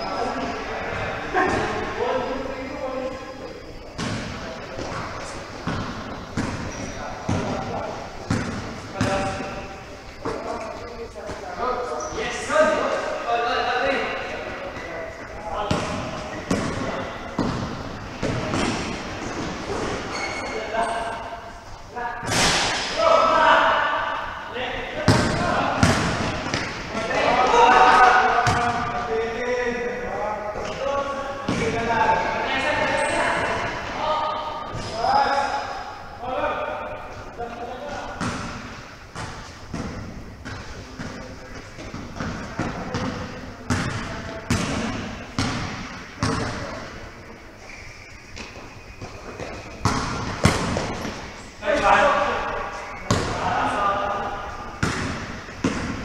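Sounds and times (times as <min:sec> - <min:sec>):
basketball bouncing on court: 0:04.0 - 0:09.6, 0:15.7 - 0:20.0, 0:25.1 - 0:26.8, 0:28.4 - 0:29.0, 0:38.2 - 0:46.8, 0:48.4 - 0:51.3, 0:53.0 - 0:53.4, 0:54.8 - 0:56.0
players shouting in gym: 0:22.2 - 0:29.1.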